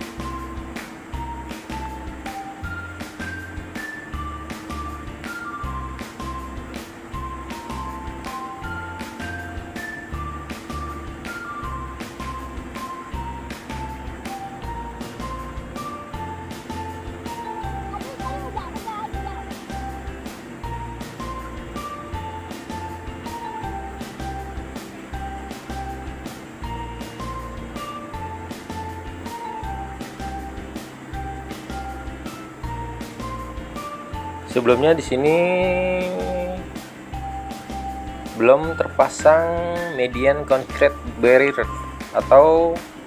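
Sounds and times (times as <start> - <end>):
background music with steady beat: 0.0 - 43.0.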